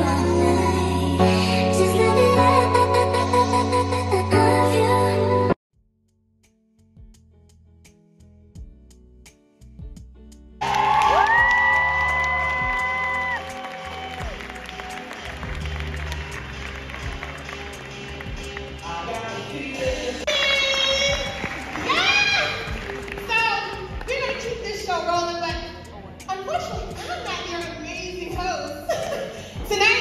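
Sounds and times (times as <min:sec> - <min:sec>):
audience shouts and whoops: 0:10.6 - 0:15.4, 0:20.3 - 0:22.8
audience applause and cheering: 0:10.6 - 0:19.5, 0:20.2 - 0:24.3.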